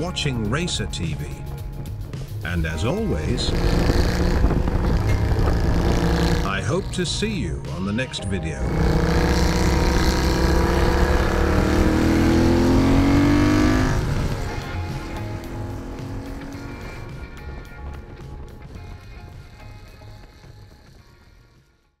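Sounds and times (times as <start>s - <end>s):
background music: 0.0s - 22.0s
motorcycle engine revving: 1.5s - 7.8s, 8.6s - 21.2s.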